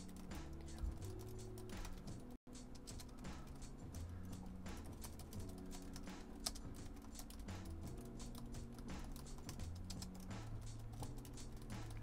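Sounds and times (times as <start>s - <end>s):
laptop keyboard typing: 0.0s - 12.0s.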